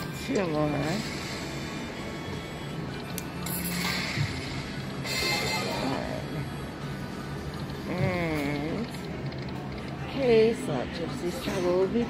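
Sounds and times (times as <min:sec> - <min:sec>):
slot machine game music: 0:00.0 - 0:07.5.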